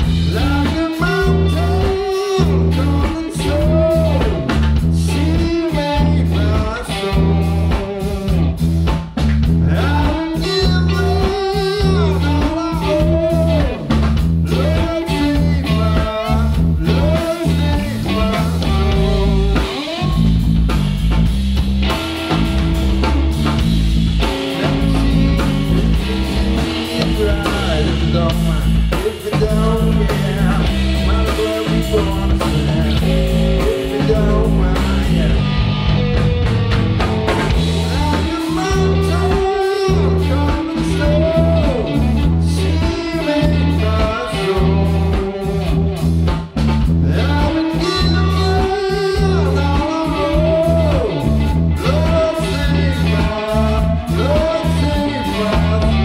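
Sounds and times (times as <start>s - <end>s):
bluesy electric guitar: 0.0s - 56.0s
drum kit: 0.0s - 56.0s
electric bass: 0.0s - 56.0s.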